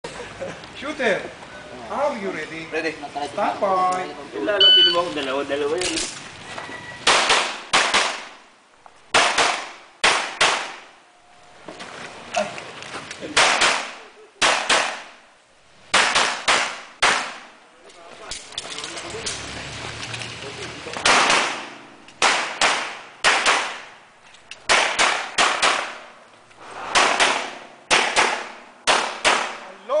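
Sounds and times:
pistol shots with echo: 21.0 - 23.9, 24.7 - 26.0, 26.9 - 29.6.

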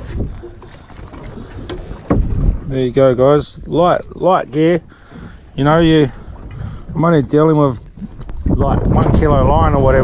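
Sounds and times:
sea wash around boat: 0.0 - 10.0
wind buffeting microphone: 0.0 - 10.0.

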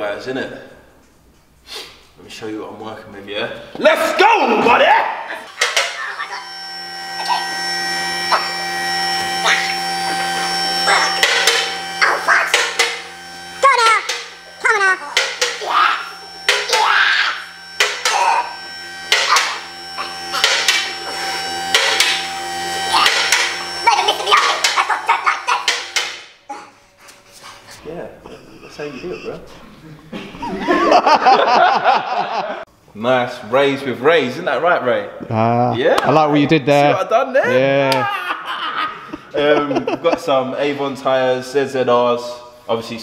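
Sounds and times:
car lift motor humming: 5.5 - 26.5.

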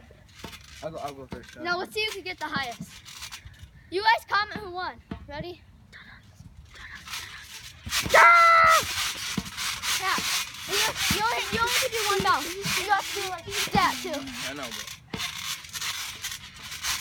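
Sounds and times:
boy yelling: 8.1 - 8.9, 10.0 - 14.4
boys exclaiming excitedly: 8.1 - 8.9, 10.0 - 14.4.

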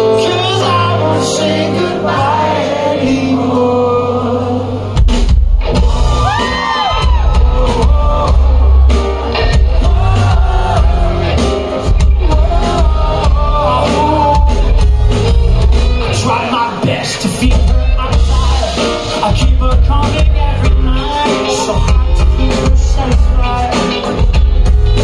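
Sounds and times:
man singing: 0.0 - 5.0, 7.0 - 14.9, 16.0 - 24.4
live pop band playing: 0.0 - 25.0.

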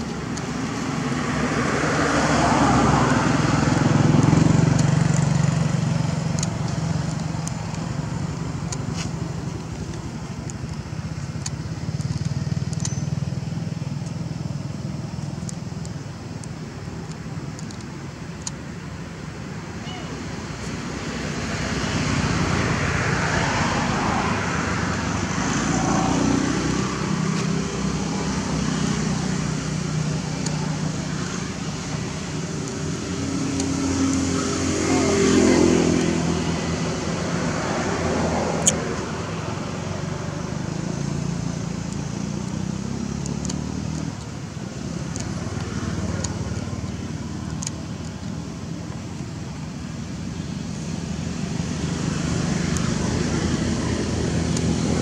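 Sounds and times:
traffic engine drone: 0.0 - 55.0.

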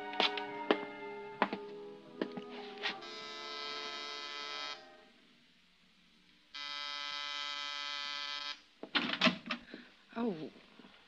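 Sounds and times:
door buzzer: 3.0 - 4.8, 6.6 - 8.6.

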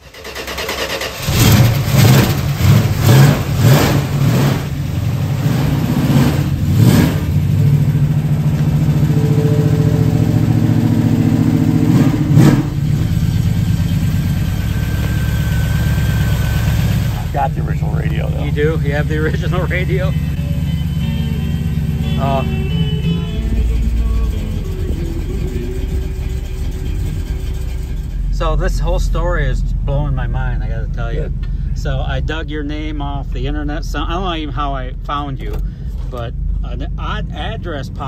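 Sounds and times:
car engine starting and revving: 0.0 - 38.0.

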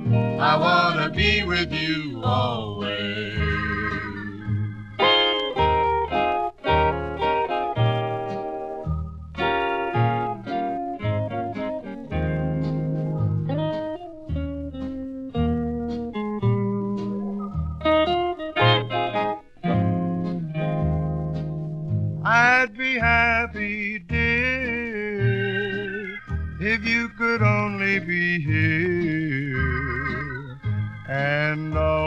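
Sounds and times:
bass line: 0.0 - 32.0
guitar picking a melody: 0.0 - 32.0.

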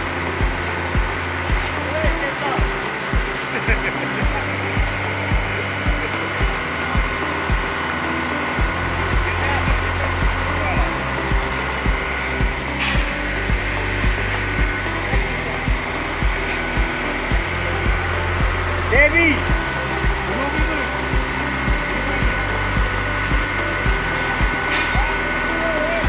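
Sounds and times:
concrete pump drone: 0.0 - 26.0.

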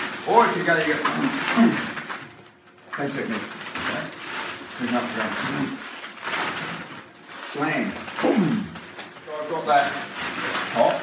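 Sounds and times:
man speaking: 4.8 - 5.8.

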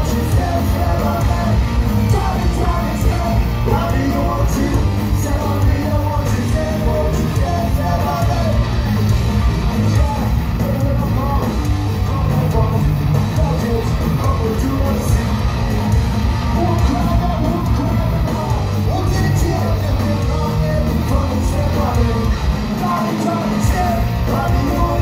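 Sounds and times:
person singing lead vocal: 0.0 - 25.0
punk rock band playing: 0.0 - 25.0.

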